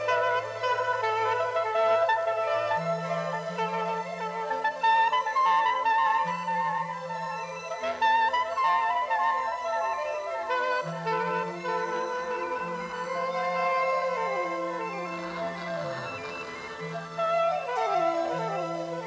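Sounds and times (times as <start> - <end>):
wooden flutes playing slow melody: 0.0 - 19.0.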